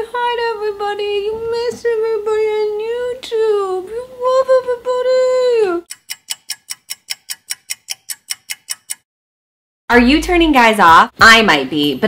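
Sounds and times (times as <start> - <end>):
sharp ticks: 5.8 - 9.1.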